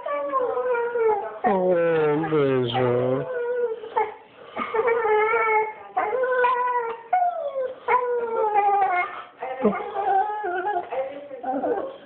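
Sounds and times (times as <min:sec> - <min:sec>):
dog whining howls: 0:00.0 - 0:10.9.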